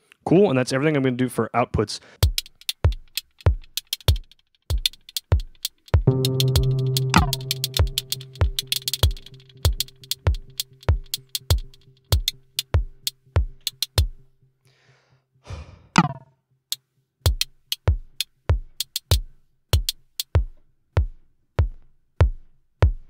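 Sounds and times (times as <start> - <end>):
kick drum: 2.2 - 3.6, 4.7 - 14.2, 17.3 - 23.0
ticking hi-hats: 2.2 - 14.3, 16.7 - 23.0
electronic drum hit: 6.0 - 14.2
low synth tone: 6.1 - 13.6.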